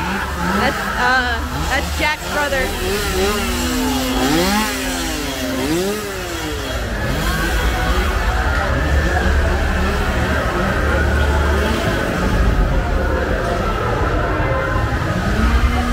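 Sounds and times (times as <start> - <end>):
chainsaw engine revving: 0.0 - 12.8, 14.8 - 15.9.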